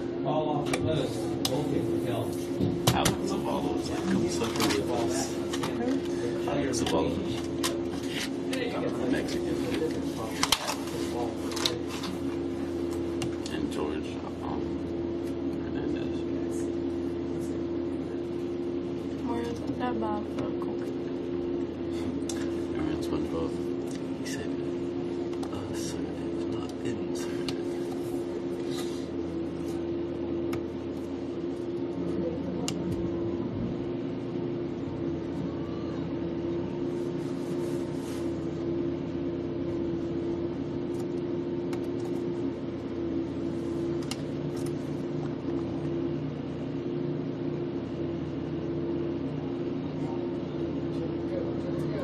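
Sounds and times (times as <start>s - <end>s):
steady low hum: 0.0s - 52.0s.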